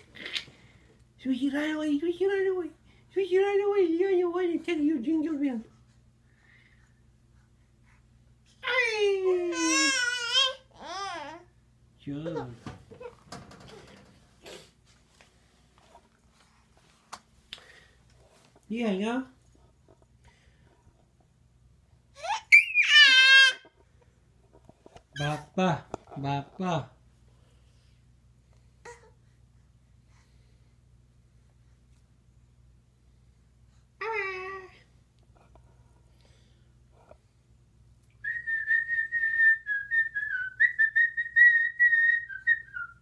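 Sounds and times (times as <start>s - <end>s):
infant crying: 8.6s - 11.5s, 22.2s - 23.7s
infant high-pitched squeal: 22.2s - 23.6s.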